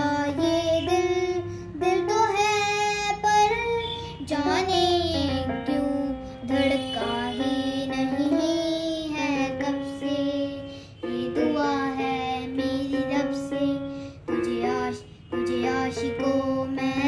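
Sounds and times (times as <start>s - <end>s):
child singing: 0.0s - 17.0s
electronic keyboard held notes: 0.0s - 17.0s.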